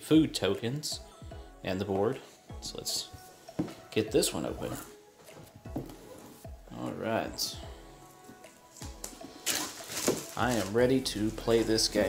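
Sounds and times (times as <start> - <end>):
quiet background music: 0.0 - 12.0
plastic shrink-wrap rustling: 9.1 - 12.0.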